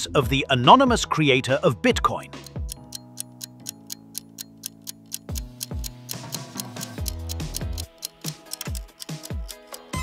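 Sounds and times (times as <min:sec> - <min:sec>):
clock ticking: 0:02.4 - 0:10.0.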